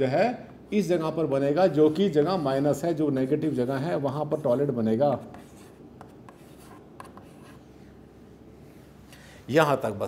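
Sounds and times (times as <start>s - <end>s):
chalk scraping on blackboard: 4.4s - 7.7s
chalk tapping on blackboard: 5.1s - 7.6s.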